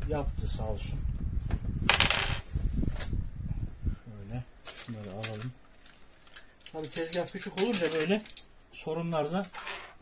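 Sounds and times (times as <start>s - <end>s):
light clicks and knocks of parts: 4.6s - 8.5s.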